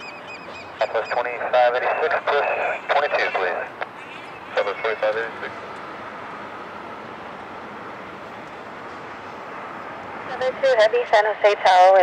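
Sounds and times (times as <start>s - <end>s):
radio transmission voice: 0.8s - 5.6s, 10.3s - 12.0s
steady radio hiss: 0.8s - 5.6s, 10.3s - 12.0s.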